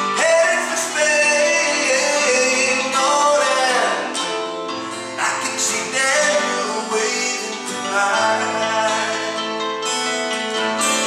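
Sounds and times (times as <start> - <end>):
man singing: 0.0 - 4.4, 5.0 - 9.9
electronic keyboard chords: 0.0 - 11.0
strummed acoustic guitar: 0.0 - 11.0.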